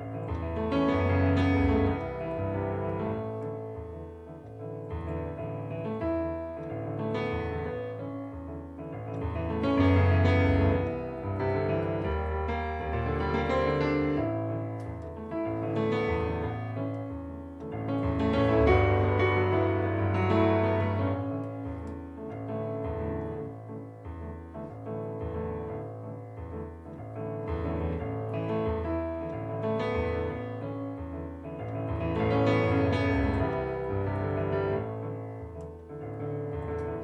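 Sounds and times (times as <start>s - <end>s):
solo digital piano piece: 0.0s - 37.0s.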